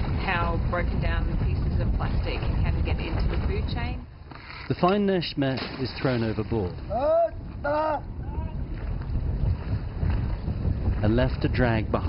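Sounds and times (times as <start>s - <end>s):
boat engine rumble: 0.0s - 12.0s
water: 0.0s - 12.0s
wind buffeting microphone: 0.0s - 12.0s.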